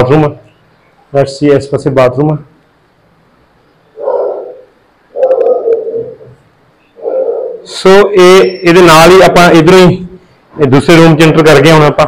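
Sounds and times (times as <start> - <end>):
pigeons cooing: 4.0 - 7.8.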